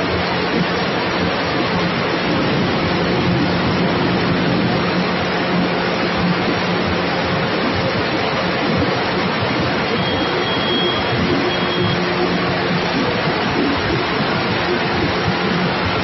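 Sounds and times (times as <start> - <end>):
low motor hum: 0.0 - 16.0
machine rushing noise: 0.0 - 16.0.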